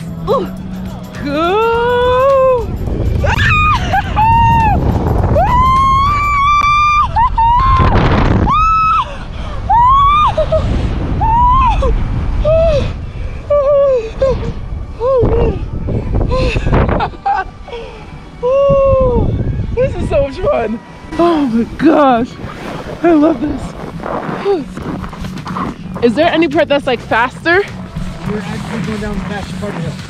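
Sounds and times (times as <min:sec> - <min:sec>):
wind rumble on microphone: 0:00.0 - 0:30.0
woman screaming: 0:01.3 - 0:04.8, 0:05.4 - 0:09.1, 0:09.7 - 0:10.6, 0:11.2 - 0:12.9.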